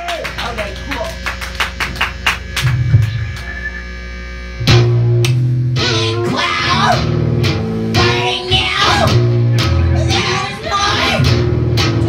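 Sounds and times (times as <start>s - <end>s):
amplifier hum: 0.0s - 12.0s
low bass note: 0.0s - 12.0s
drum kit ticks: 4.6s - 5.5s.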